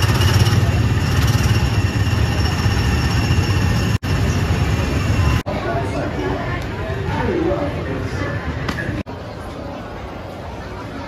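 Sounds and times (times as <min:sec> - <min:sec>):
small gasoline engines running: 0:00.0 - 0:05.4.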